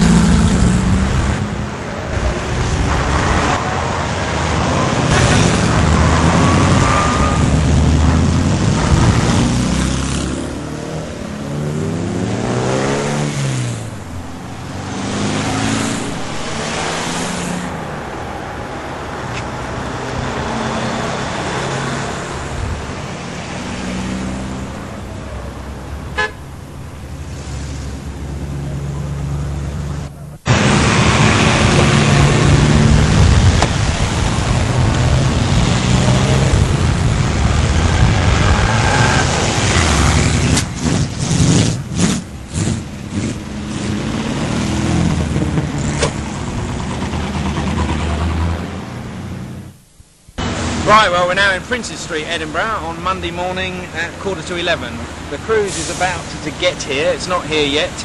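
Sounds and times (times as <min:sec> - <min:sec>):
cars driving past: 0:00.0 - 0:49.8, 0:50.4 - 0:58.0
car horns tooting: 0:26.1 - 0:26.6.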